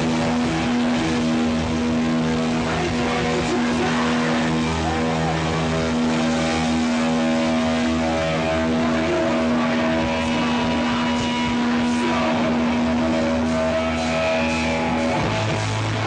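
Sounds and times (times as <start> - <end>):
distorted guitar and bass drone: 0.0 - 16.0.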